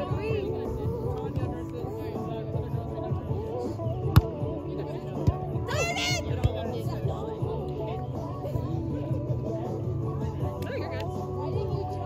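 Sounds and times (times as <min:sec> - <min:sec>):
background music: 0:00.0 - 0:12.0
chatter: 0:00.0 - 0:12.0.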